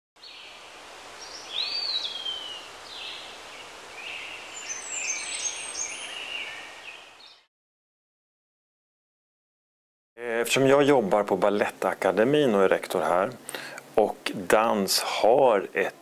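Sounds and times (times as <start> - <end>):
steady outdoor hiss: 0.2 - 7.4, 10.2 - 16.0
songbirds singing and chirping: 0.2 - 7.5.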